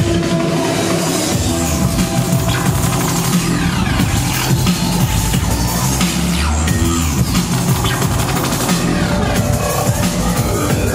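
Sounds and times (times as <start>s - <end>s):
drum and bass music: 0.0s - 10.9s.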